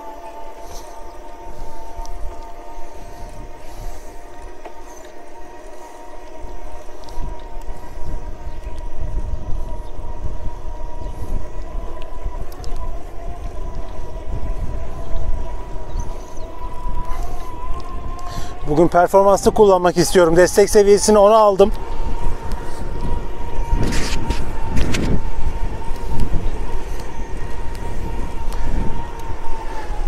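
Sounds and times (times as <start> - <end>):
electric motor whining: 0.0 - 30.0
wind rumble on microphone: 0.0 - 30.0.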